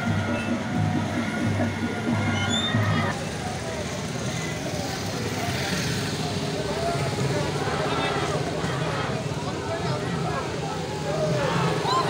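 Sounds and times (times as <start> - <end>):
crowd voices: 0.0 - 12.0
motorcycles: 0.0 - 12.0
vehicle engines rumbling: 0.0 - 12.0.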